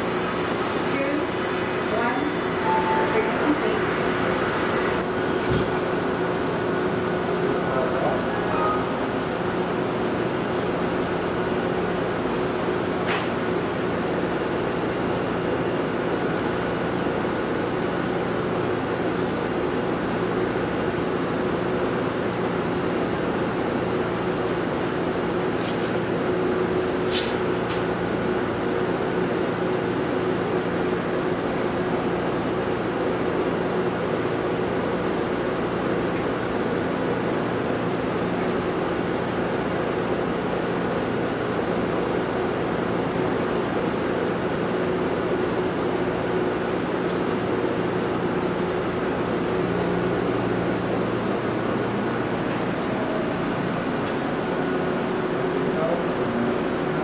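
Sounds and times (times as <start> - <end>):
machine hum with high whine: 0.0 - 57.0.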